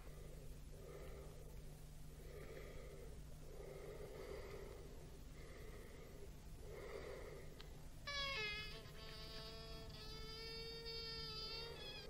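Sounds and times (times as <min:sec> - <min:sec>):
faint slow breathing: 0:00.0 - 0:08.0.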